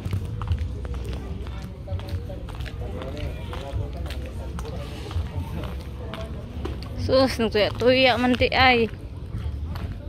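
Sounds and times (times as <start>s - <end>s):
footsteps on concrete: 0.0s - 10.0s
people talking in the distance: 0.0s - 10.0s.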